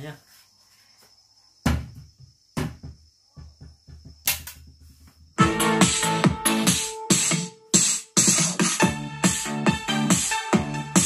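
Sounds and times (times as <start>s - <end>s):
electronic track with drum-machine beat: 5.4s - 11.0s.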